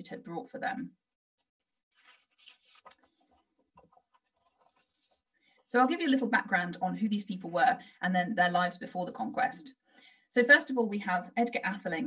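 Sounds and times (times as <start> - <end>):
faint rustling: 1.9 - 5.8.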